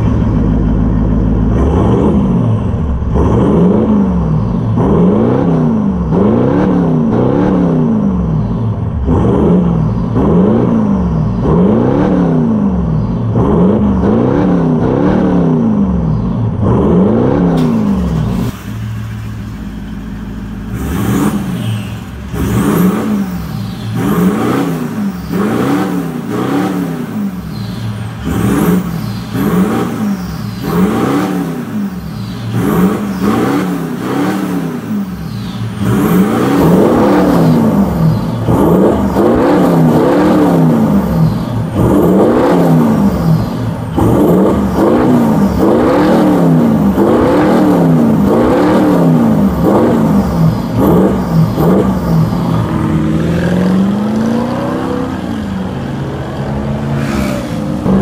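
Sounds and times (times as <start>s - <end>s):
engine revving in throttle blips: 0.0s - 58.0s.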